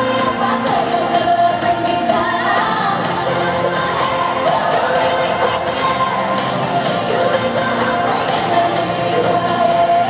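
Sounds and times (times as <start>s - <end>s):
amplified backing music: 0.0s - 10.0s
female group singing: 0.0s - 10.0s.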